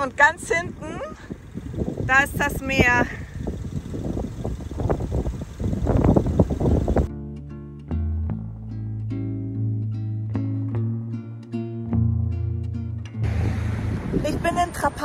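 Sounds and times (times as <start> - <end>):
wind buffeting microphone: 0.0 - 7.1, 13.2 - 15.0
steady bass tones: 0.0 - 11.3, 12.0 - 15.0
plucked guitar notes: 7.1 - 14.2.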